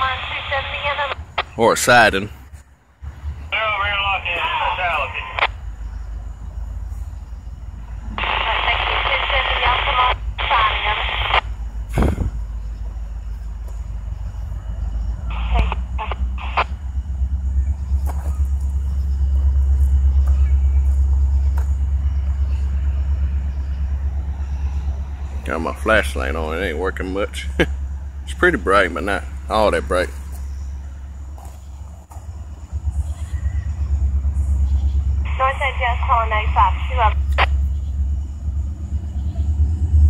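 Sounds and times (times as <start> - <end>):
radio voice transmissions: 0.0 - 2.5, 3.4 - 5.6, 8.0 - 12.3, 15.2 - 16.8, 25.2 - 30.2, 35.2 - 37.6
low rumble: 0.0 - 40.0.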